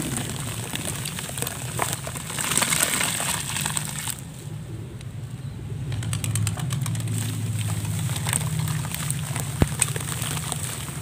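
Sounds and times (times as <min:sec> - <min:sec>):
gritty crackling and splashes: 0:00.0 - 0:04.4, 0:06.1 - 0:11.0
steady low hum: 0:00.0 - 0:11.0.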